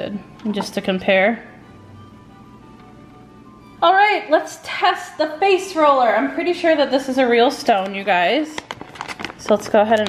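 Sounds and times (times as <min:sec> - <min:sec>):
woman speaking: 0:00.0 - 0:01.5, 0:03.8 - 0:08.7, 0:09.4 - 0:10.0
faint background music: 0:00.0 - 0:10.0.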